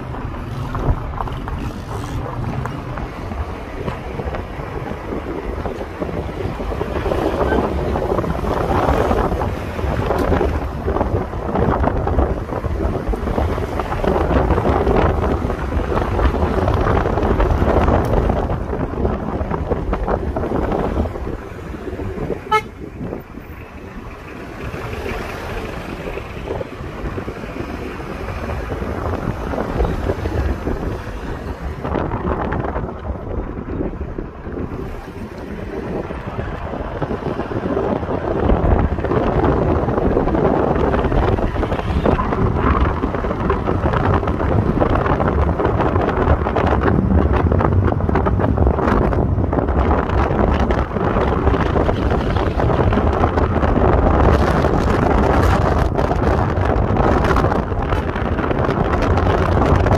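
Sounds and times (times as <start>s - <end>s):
road and wind noise inside car: 0.0s - 59.9s
vehicle horn toot: 22.4s - 22.9s.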